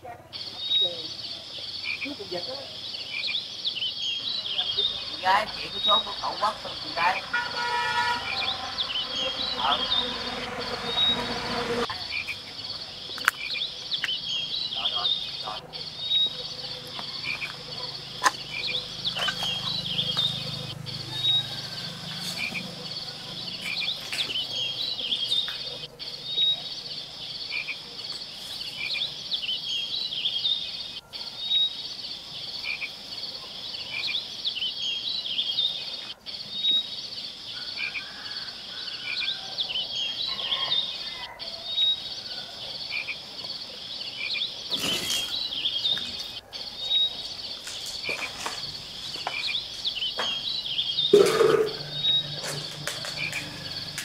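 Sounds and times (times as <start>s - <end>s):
frogs chirping: 0.0s - 54.0s
insects trilling: 0.0s - 54.0s.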